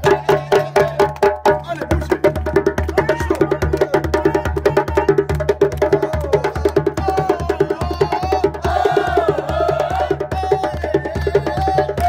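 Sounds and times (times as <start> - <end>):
djembe hand-drum strokes: 0.0 - 12.0.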